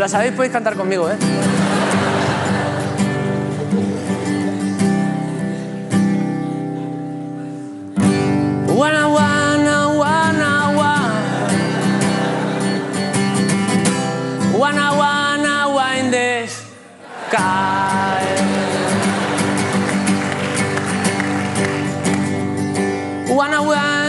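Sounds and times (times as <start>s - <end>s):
guitar strumming chords: 0.0s - 24.0s.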